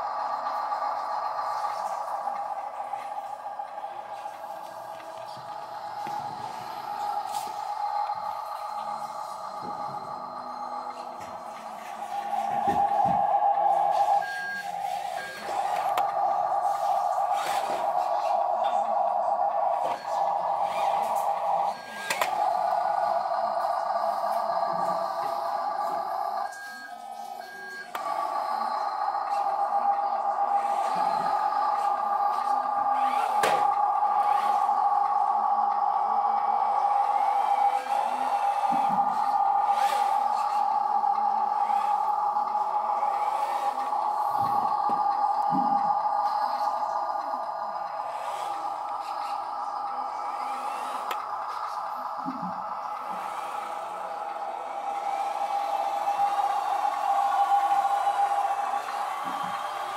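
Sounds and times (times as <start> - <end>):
toy truck motor whine: 0.0 - 59.9.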